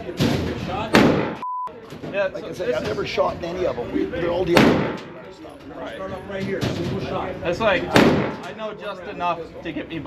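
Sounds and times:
gunshots echoing indoors: 0.9s - 1.4s, 4.6s - 5.2s, 7.9s - 8.6s
censor bleep: 1.4s - 1.7s.

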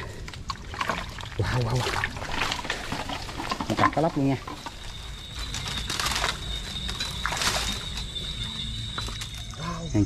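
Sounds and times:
water sloshing and splashing: 0.0s - 9.5s.

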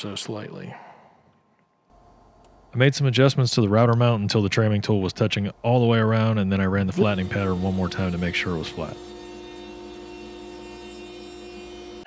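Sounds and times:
router motor whining: 6.9s - 12.0s.

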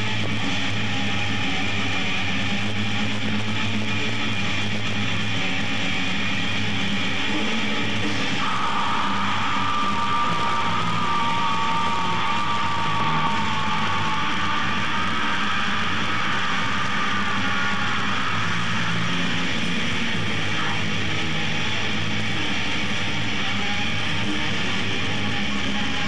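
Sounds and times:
distorted electric guitars: 0.0s - 26.0s
drums: 0.0s - 26.0s
metal band playing live: 0.0s - 26.0s
high ringing tone: 8.4s - 19.0s.

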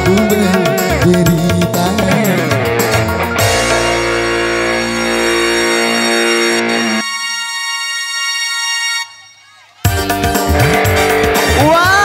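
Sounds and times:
band playing instrumental chord: 0.0s - 9.2s, 9.9s - 12.0s.

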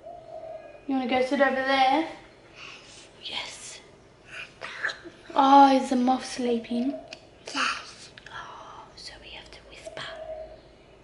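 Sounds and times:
woman and child whispering: 2.6s - 5.1s, 7.5s - 10.4s.

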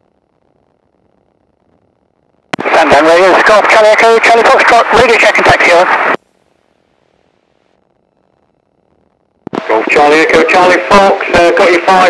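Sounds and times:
faint radio hiss: 0.0s - 12.0s
radio transmission: 2.6s - 6.2s, 9.4s - 12.0s.

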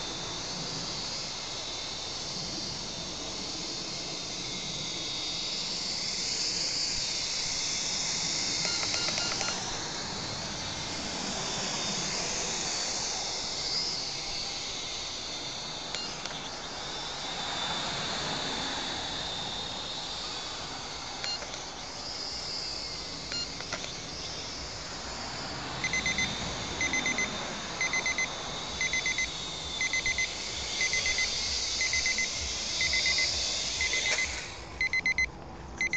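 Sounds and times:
quadcopter motors buzzing: 0.0s - 35.9s
high electronic beeping: 8.6s - 9.6s, 23.3s - 23.7s, 25.8s - 35.9s.

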